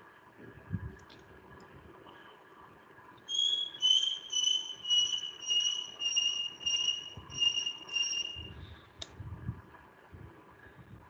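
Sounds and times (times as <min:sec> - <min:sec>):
short high-pitched beeps: 0:03.3 - 0:08.6.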